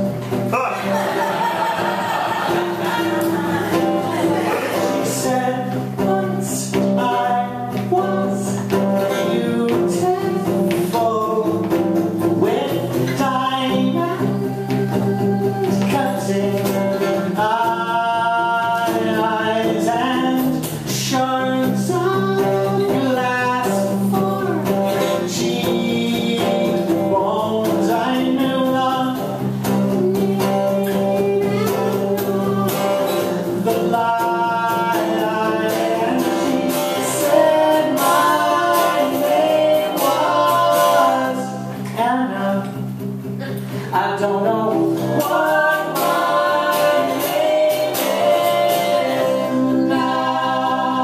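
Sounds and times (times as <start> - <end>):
acoustic guitar: 0.0 - 51.0
person singing folk-rock song: 0.0 - 51.0.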